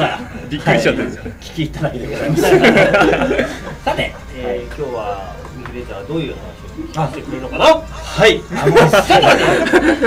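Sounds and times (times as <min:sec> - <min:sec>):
people talking: 0:00.0 - 0:10.0
people chuckling: 0:02.2 - 0:04.3, 0:08.5 - 0:10.0.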